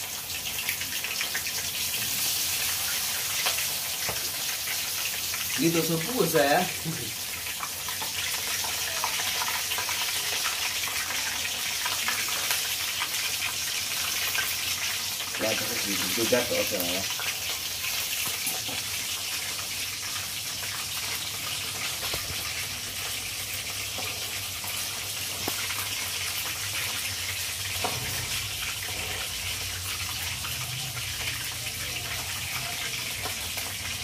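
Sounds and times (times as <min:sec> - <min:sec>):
chicken deep-frying in oil: 0:00.0 - 0:34.0.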